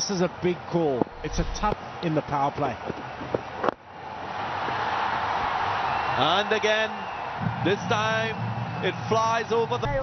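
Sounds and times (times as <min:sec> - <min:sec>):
crowd roar: 0:04.0 - 0:09.8.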